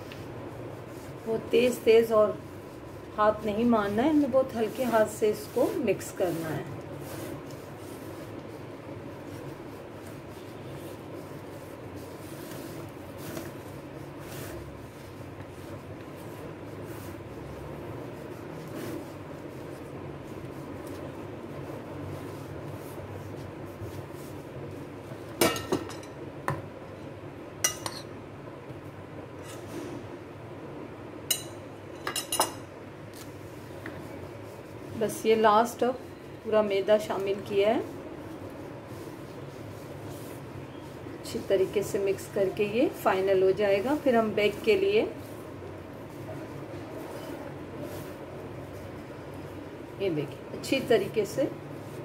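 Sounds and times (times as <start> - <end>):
spoon stirring batter: 0.0 - 26.7, 27.5 - 28.8.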